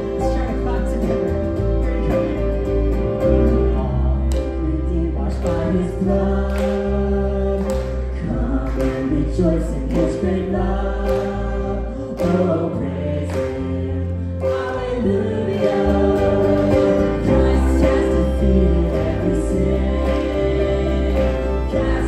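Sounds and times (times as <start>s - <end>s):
worship band playing a hymn: 0.0s - 22.0s
voices singing: 3.2s - 22.0s
woman singing lead vocal: 4.8s - 22.0s.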